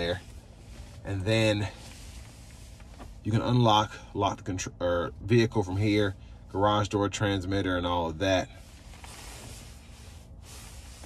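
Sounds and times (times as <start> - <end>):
low even hum: 0.0 - 11.0.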